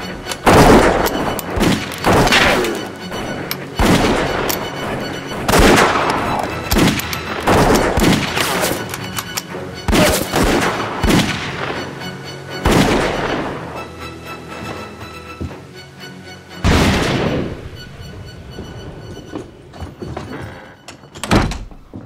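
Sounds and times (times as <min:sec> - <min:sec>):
rifle gunshots echoing: 0:00.3 - 0:11.8.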